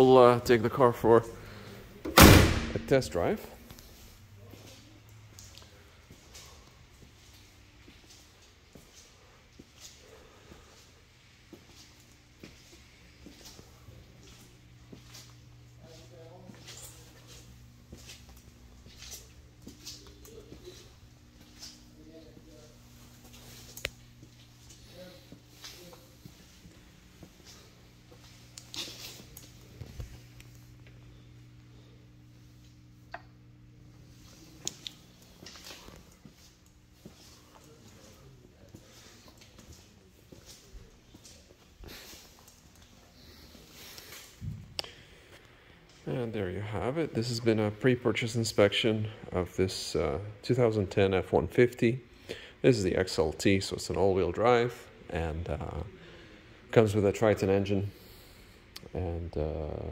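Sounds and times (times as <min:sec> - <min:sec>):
steady low hum: 0:00.0 - 0:59.9
footsteps on concrete floor: 0:03.6 - 0:30.5, 0:34.1 - 0:44.8.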